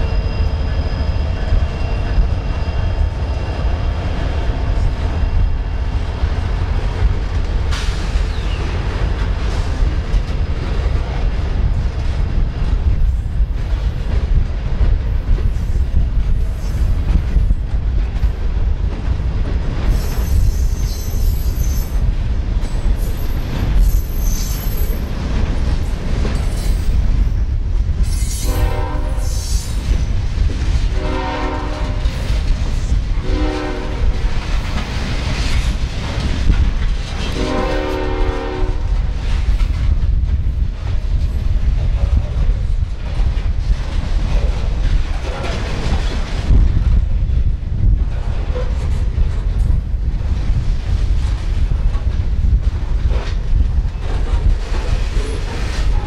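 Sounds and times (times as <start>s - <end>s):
freight cars rumbling and clattering: 0.0s - 56.0s
locomotive air horn blasts: 28.4s - 29.4s, 30.9s - 32.0s, 33.2s - 34.1s, 37.4s - 38.9s.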